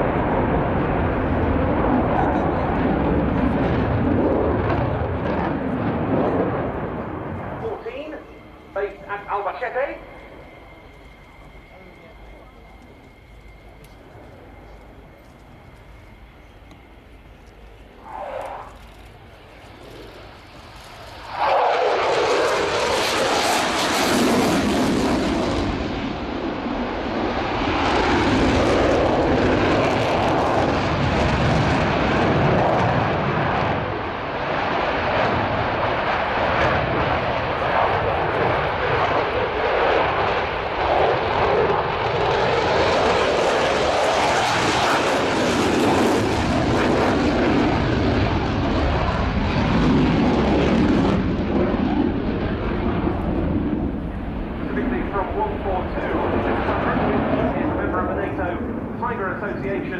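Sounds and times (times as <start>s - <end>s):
loud jet engine noise: 0.0s - 59.9s.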